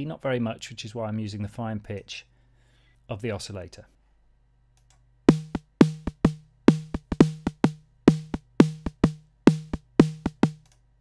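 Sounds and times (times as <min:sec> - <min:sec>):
synthesized snare drum pattern: 0:05.3 - 0:10.6.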